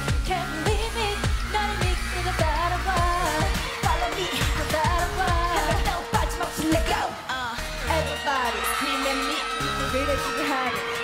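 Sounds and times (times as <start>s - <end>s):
heavy kick drum beat: 0.0s - 7.0s
female vocals: 0.0s - 11.0s.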